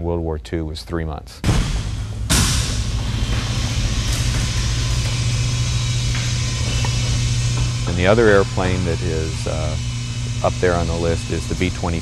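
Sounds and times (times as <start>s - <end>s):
loud rumble with low hum: 1.4s - 12.0s.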